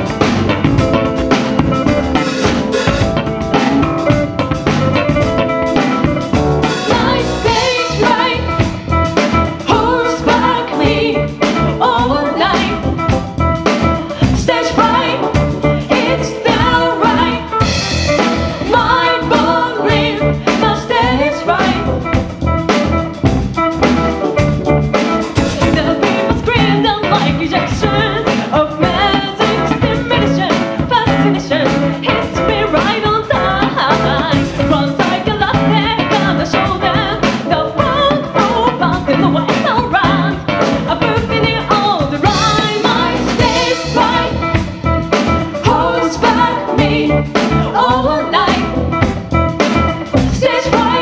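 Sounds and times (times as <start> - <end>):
drum kit: 0.0 - 51.0
electric guitar: 0.0 - 51.0
keyboard: 0.0 - 51.0
people singing: 6.6 - 13.0, 13.8 - 22.0, 25.4 - 48.9, 50.2 - 51.0.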